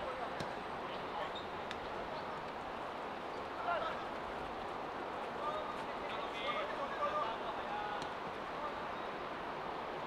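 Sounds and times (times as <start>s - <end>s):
steady background noise: 0.0s - 10.0s.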